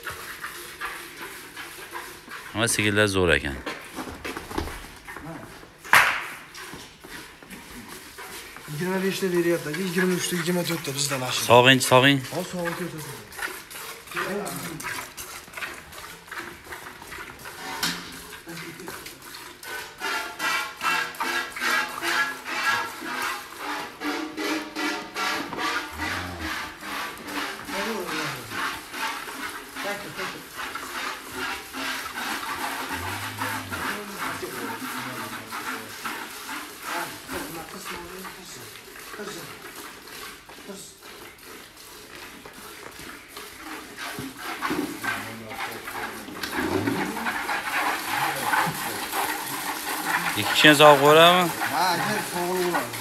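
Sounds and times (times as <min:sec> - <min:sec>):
milk squirting into metal pail: 0:05.8 - 0:53.0.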